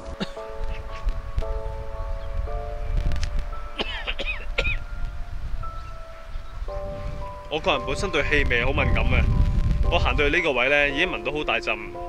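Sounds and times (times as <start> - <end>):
sustained music chords: 0.0 - 12.0
wind buffeting microphone: 0.0 - 12.0.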